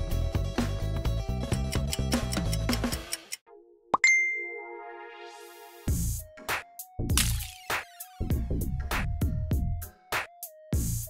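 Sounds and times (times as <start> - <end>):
background music: 0.0 - 11.0
bright bell-like ding: 4.0 - 4.8.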